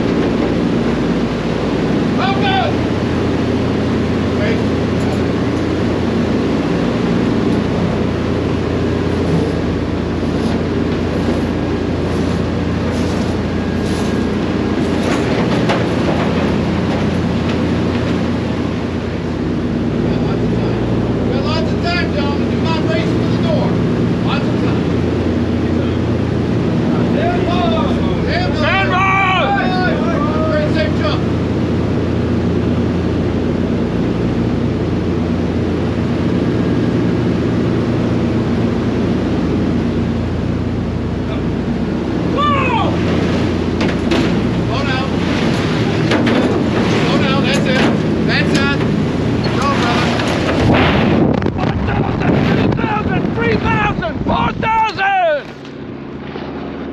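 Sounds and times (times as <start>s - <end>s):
aircraft propeller engines droning: 0.0s - 56.9s.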